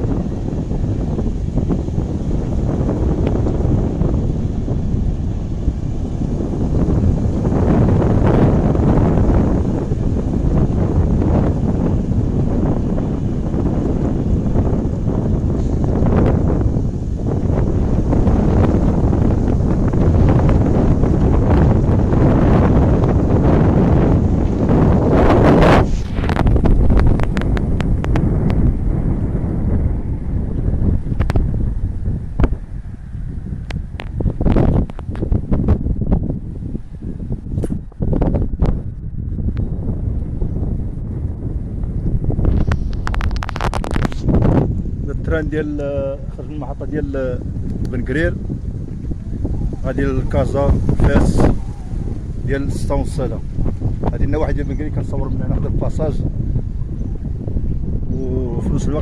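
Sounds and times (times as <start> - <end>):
gusty wind buffeting microphone: 0.0 - 59.0
crackling: 42.5 - 44.4.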